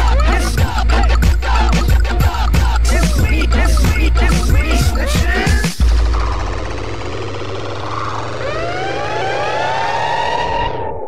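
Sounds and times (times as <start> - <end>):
music with beat: 0.0 - 6.5
siren-like sweeping tones: 5.8 - 11.0.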